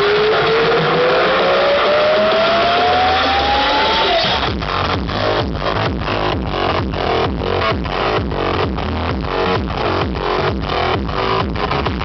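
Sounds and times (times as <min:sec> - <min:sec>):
rising synth sweep: 0:00.0 - 0:07.2
electronic dance music: 0:00.0 - 0:12.0.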